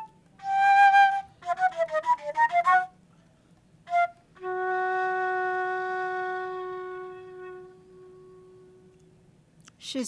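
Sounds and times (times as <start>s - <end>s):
flute holding low note: 0.0s - 3.0s, 3.8s - 9.0s.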